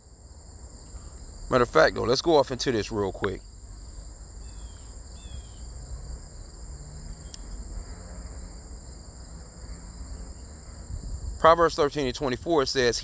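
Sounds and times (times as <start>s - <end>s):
crickets trilling: 0.0s - 13.0s
faint chirps: 3.1s - 6.0s.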